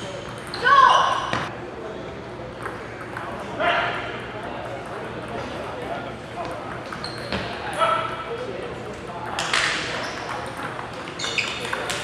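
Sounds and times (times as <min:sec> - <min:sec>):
shoe squeal: 0:06.9 - 0:07.6, 0:09.9 - 0:10.4, 0:11.1 - 0:12.0.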